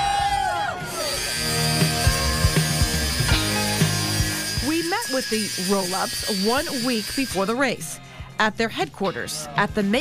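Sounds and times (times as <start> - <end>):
people cheering and shouting: 0.0 - 4.4
angle grinder cutting steel: 0.8 - 7.9
background music with a beat: 1.1 - 4.7.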